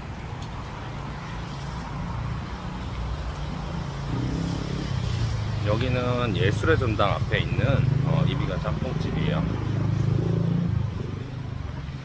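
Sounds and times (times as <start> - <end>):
tyre hiss on wet road: 0.0 - 7.0
vehicle engines humming: 0.0 - 12.0.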